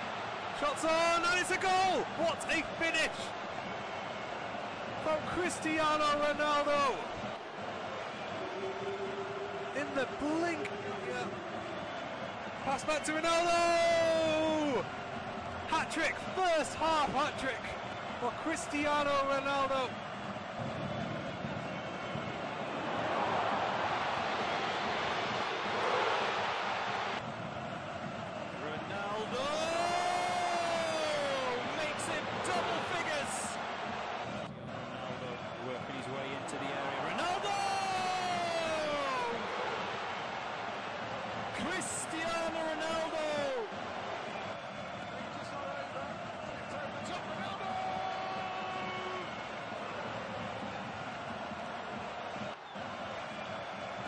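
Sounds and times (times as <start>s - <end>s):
stadium crowd noise: 0.0s - 54.0s.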